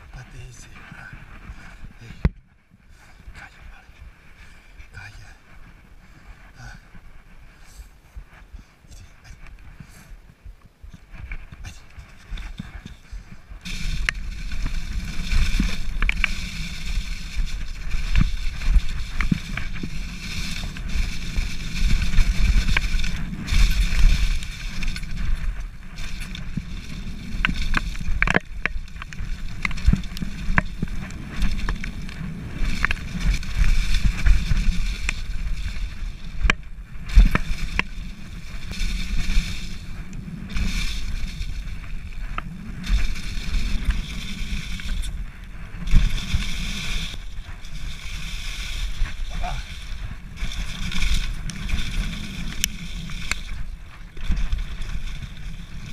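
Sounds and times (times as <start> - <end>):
wind and ground rumble: 0.0 - 55.9
tyres through dry leaves: 2.9 - 55.9
bike rattling clicks and knocks: 10.9 - 55.9.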